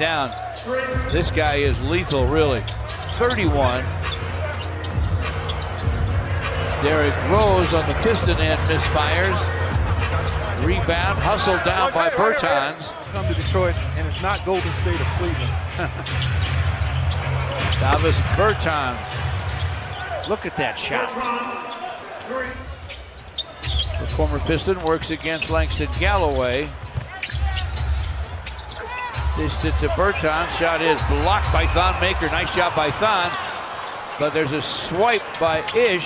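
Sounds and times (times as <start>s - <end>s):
arena crowd noise: 0.0s - 36.0s
commentator talking: 6.7s - 9.6s, 10.6s - 15.5s, 29.3s - 33.4s.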